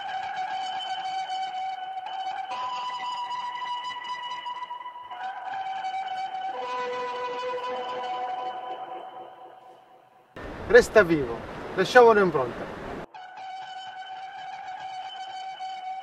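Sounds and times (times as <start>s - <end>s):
slow keyboard music: 0.0s - 10.3s, 13.1s - 16.0s.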